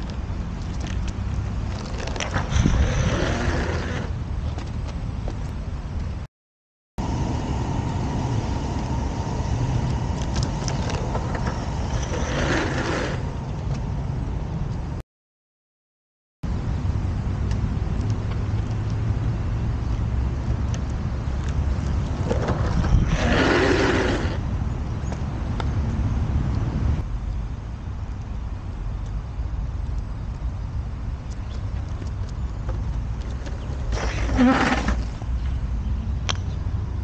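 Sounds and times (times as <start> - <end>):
longboard wheels sliding on asphalt: 0.0 - 5.4, 7.0 - 14.0, 21.3 - 24.8, 31.3 - 35.6
wind rumble on microphone: 0.0 - 6.3, 16.5 - 37.0
gloved hand scraping road: 1.6 - 4.8, 10.3 - 13.6, 22.1 - 24.4, 33.3 - 35.6.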